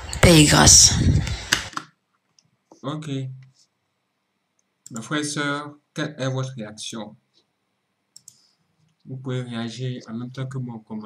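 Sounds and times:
faint computer clicks: 4.5 - 5.1, 8.1 - 9.0.

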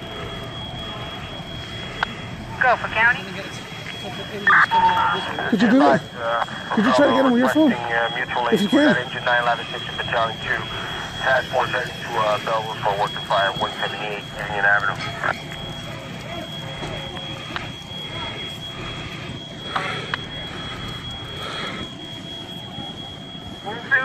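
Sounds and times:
fire engines running: 0.0 - 24.0
high-pitched whine: 0.0 - 24.0
indistinct voices: 0.0 - 24.0.

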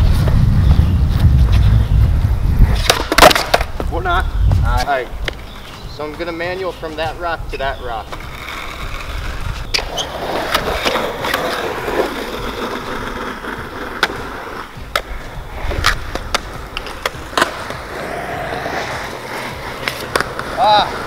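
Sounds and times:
skateboard wheels rolling on concrete: 0.0 - 21.0
skateboard clacks: 2.7 - 3.9, 8.0 - 21.0.

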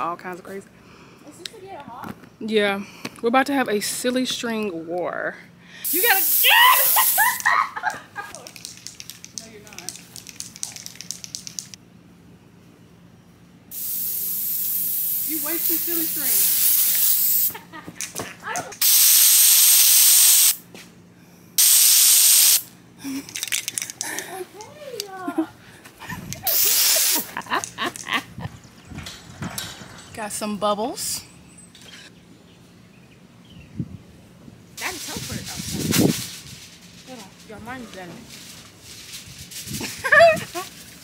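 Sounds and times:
aerosol can spraying hiss: 5.8 - 7.4, 13.7 - 17.6, 18.8 - 20.6, 21.6 - 22.7, 26.4 - 27.3
person laughing: 6.5 - 8.5, 25.2 - 28.6, 39.8 - 40.7.

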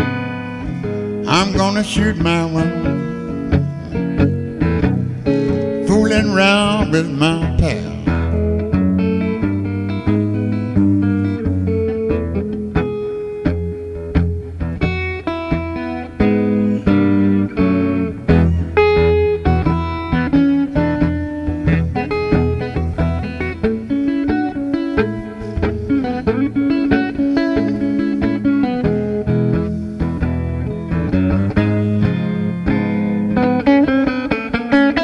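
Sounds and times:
low bass notes: 0.0 - 33.8
blues guitar playing: 0.0 - 35.0.

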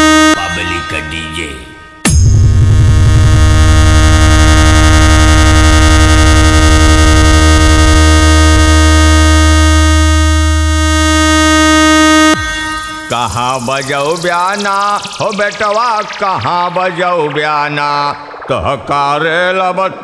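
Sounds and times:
held electronic chord: 0.0 - 18.7
electronic remix music: 0.0 - 20.0
heavy bass pulse: 2.0 - 20.0.

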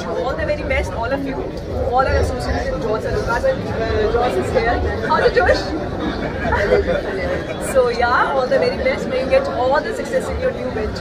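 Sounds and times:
people chattering: 0.0 - 11.0
people laughing: 4.7 - 8.3.

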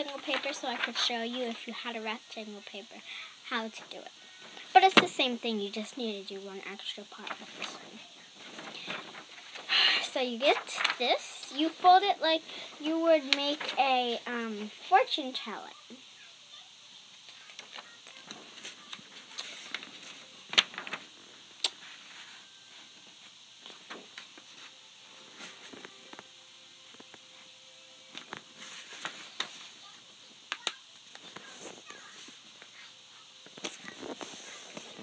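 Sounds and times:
paper folding and crackling: 0.0 - 2.0, 6.2 - 15.0, 17.3 - 22.5, 23.6 - 24.7, 28.1 - 32.4.

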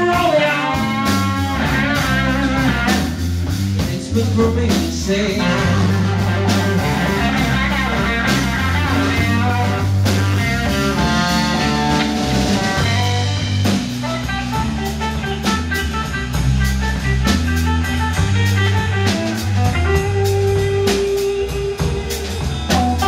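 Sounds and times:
drum kit: 0.0 - 23.0
electric bass: 0.0 - 23.0
slow blues electric guitar: 0.0 - 23.0.

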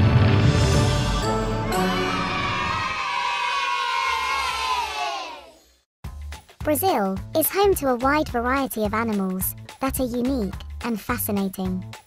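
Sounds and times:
children cheering: 1.6 - 5.6.

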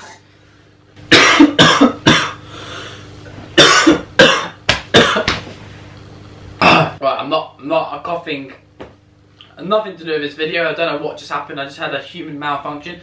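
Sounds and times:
man coughing: 1.1 - 2.5, 3.6 - 5.4, 6.6 - 7.0.

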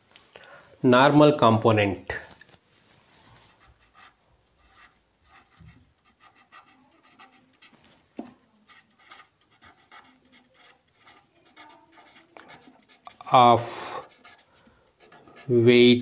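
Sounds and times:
marker pen scratching on paper: 2.7 - 16.0.

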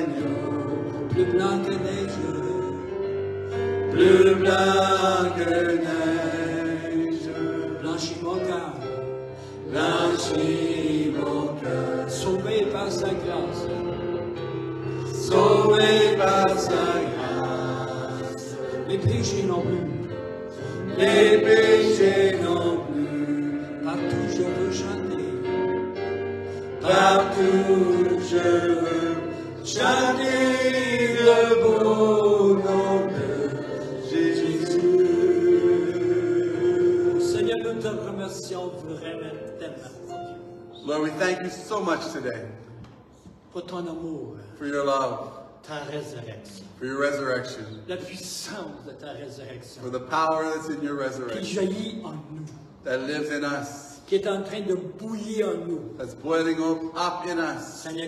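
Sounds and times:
men singing worship song: 0.0 - 3.0, 3.6 - 8.5, 9.4 - 13.8, 14.9 - 25.3, 26.5 - 39.0.

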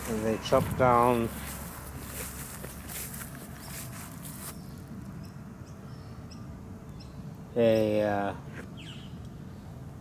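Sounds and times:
footsteps through long grass: 0.0 - 5.1.

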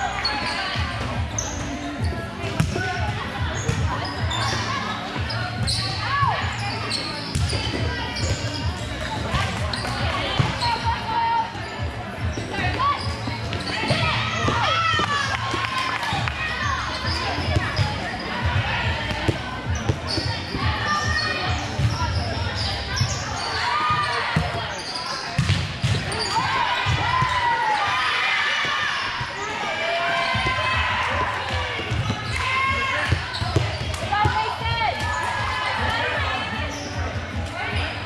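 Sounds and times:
sneaker squeaks: 0.1 - 15.4, 16.6 - 27.6, 31.8 - 35.4, 36.3 - 38.0
volleyball hits and bounces: 2.4 - 4.6, 7.3 - 10.8, 13.4 - 16.4, 25.3 - 27.4, 30.3 - 35.4
girls calling and shouting: 34.0 - 36.6.

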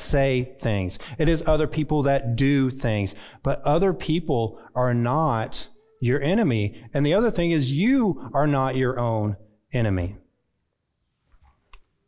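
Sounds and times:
man speaking: 0.0 - 10.2.

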